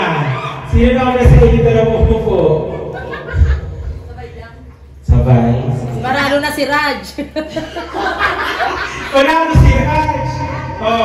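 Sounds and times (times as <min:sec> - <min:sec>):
people laughing: 0:02.3 - 0:04.5, 0:07.1 - 0:10.7.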